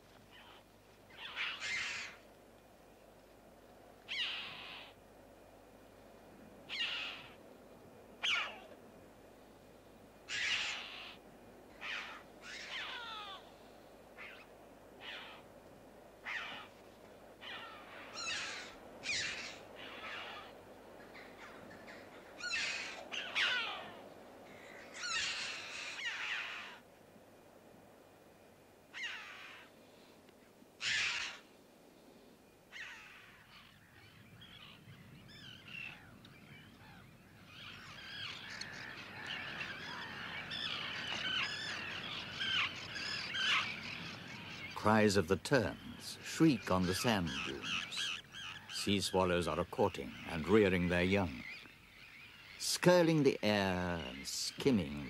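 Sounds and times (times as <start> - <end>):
birds screeching in flight: 1.2 - 2.2, 8.2 - 8.6, 10.3 - 11.2, 11.8 - 13.5, 14.2 - 15.4, 16.2 - 16.7, 17.4 - 20.6, 21.2 - 26.8, 30.8 - 31.4, 36.8 - 45.0, 45.6 - 53.1.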